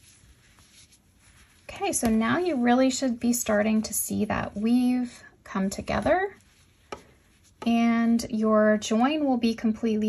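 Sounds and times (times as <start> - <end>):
yarn rustling: 0.0 - 8.4
woman speaking: 1.7 - 6.4, 7.6 - 10.0.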